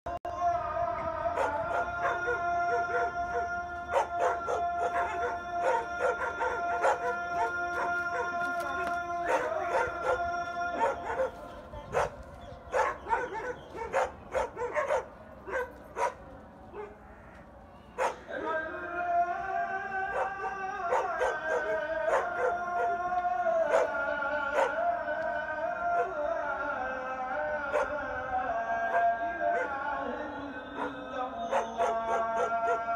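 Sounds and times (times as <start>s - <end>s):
dogs howling: 1.0s - 17.1s, 17.9s - 18.7s, 19.9s - 25.1s, 25.8s - 26.4s, 27.6s - 28.1s, 28.8s - 30.1s, 30.7s - 32.9s
dogs barking: 1.3s - 17.1s, 17.9s - 18.6s, 20.0s - 25.0s, 25.9s - 26.2s, 27.6s - 28.1s, 28.8s - 29.9s, 30.7s - 32.9s.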